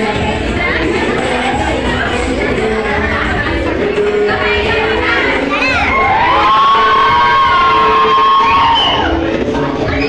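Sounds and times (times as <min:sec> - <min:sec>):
children cheering and shouting: 0:05.2 - 0:10.0.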